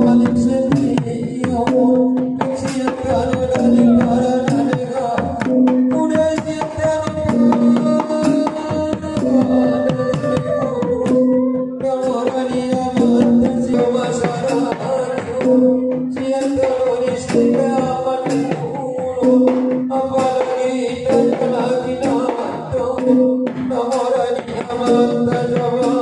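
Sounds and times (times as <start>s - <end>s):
amplified singing: 0.0s - 26.0s
two-headed drums beating: 0.0s - 26.0s.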